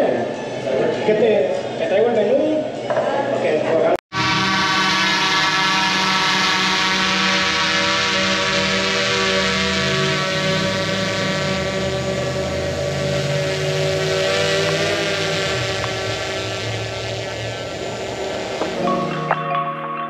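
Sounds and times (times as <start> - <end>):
drone propellers buzzing: 4.1 - 19.3.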